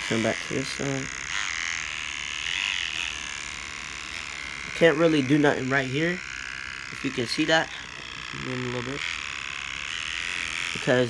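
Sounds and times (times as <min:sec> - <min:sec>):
electric hair trimmer running: 0:00.0 - 0:11.0.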